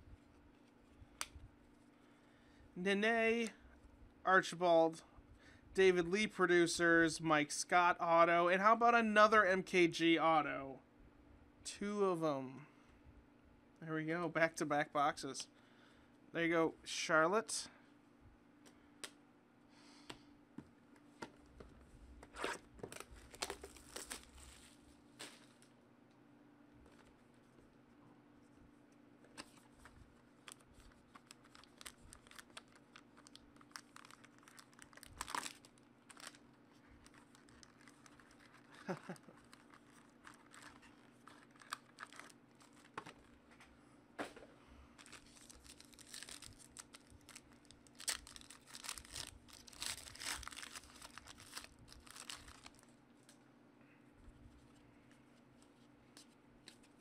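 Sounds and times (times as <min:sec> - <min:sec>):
foil wrapper crinkling and tearing: 0:22.9 - 0:25.6, 0:29.5 - 0:43.3, 0:45.0 - 0:52.9.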